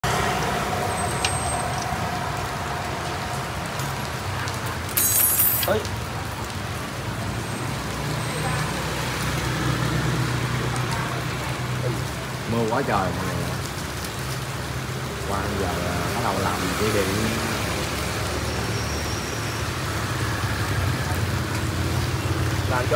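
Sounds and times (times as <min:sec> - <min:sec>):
light rain: 0:00.0 - 0:22.9
traffic on wet road: 0:00.0 - 0:22.9.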